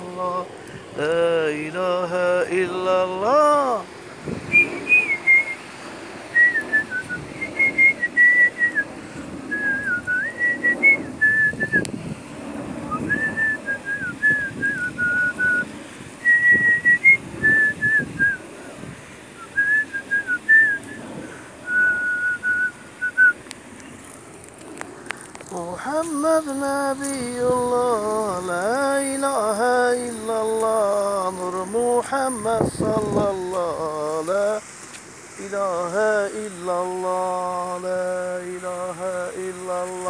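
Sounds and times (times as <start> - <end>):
person whistling a slow tune: 4.5 - 5.6, 6.4 - 8.8, 9.5 - 11.9, 12.9 - 18.4, 19.4 - 23.4.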